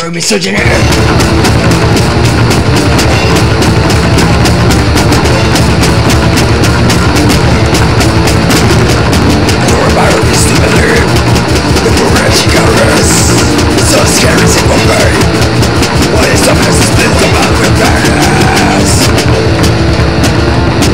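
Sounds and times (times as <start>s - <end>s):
heavy metal song: 0.0s - 20.9s.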